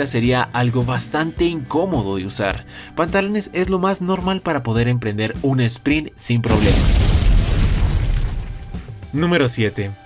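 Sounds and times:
background music: 0:00.0 - 0:10.0
explosion deep boom: 0:06.5 - 0:09.0.

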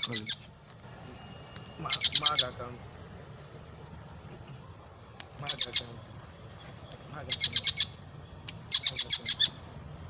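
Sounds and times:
kingfisher calling: 0:01.8 - 0:02.6, 0:05.4 - 0:05.9, 0:07.2 - 0:08.0, 0:08.7 - 0:09.6.

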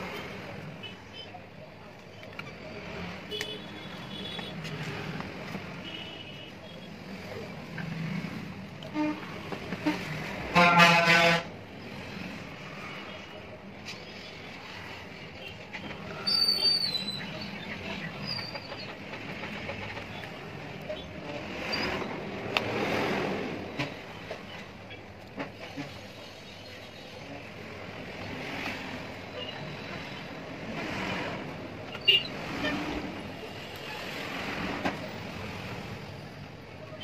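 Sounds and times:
background traffic: 0:00.0 - 0:37.0
vehicle horn: 0:08.9 - 0:11.5.

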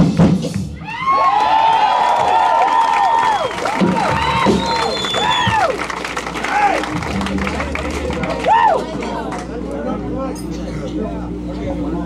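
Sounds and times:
crowd cheering and screaming: 0:00.8 - 0:09.4.

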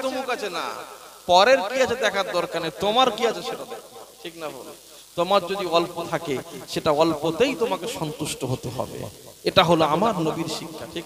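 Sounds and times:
man preaching into microphone: 0:00.0 - 0:11.0.

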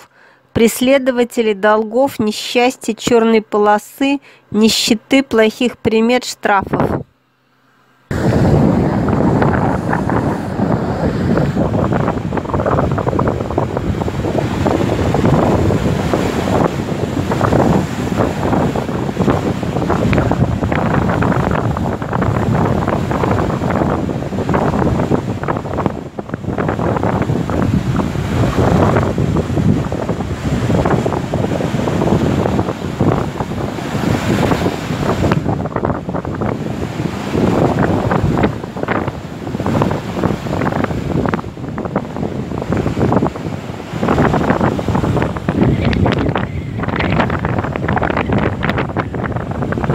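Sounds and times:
sea waves breaking on shore: 0:08.1 - 0:49.9
wind buffeting microphone: 0:08.1 - 0:49.9.

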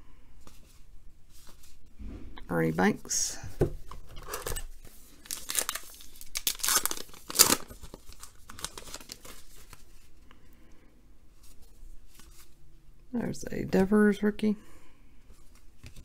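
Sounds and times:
wrapper crinkling and rustling: 0:04.1 - 0:10.2
wrapper ripping: 0:04.2 - 0:10.0.

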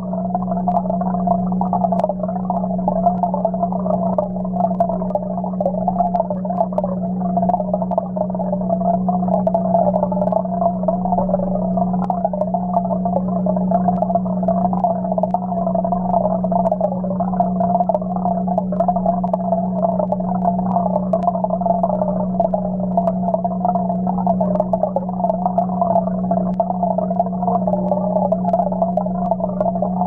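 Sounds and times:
air bubbles gurgling underwater: 0:00.0 - 0:30.0
faint ticks: 0:00.0 - 0:30.0
low hum underwater: 0:00.0 - 0:30.0
faint clicks: 0:00.3 - 0:30.0.

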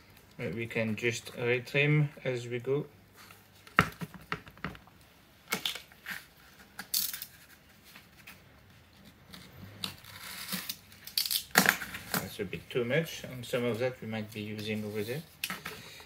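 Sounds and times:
foil tape crinkling: 0:09.8 - 0:12.1.

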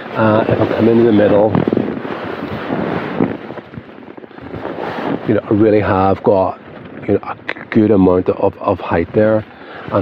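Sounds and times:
wind buffeting tent: 0:00.0 - 0:10.0.

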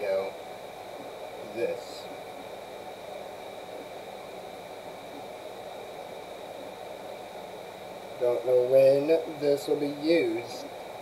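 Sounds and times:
faint high-pitched whines: 0:00.0 - 0:11.0
room tone hiss: 0:00.0 - 0:11.0.

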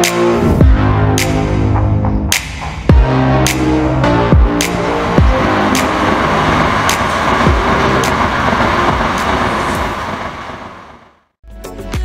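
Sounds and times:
deep falling bass hit: 0:04.0 - 0:09.2
bullet train rushing past: 0:04.1 - 0:11.2.

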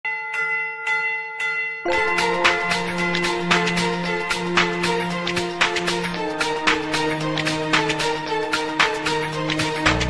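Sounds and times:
bell-like chime: 0:00.1 - 0:06.2
music with singer: 0:01.9 - 0:10.0.

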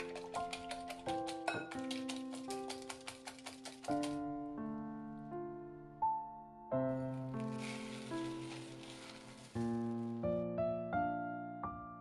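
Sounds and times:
background piano music: 0:00.0 - 0:12.0
oats pouring into glass bowl: 0:07.4 - 0:10.0.

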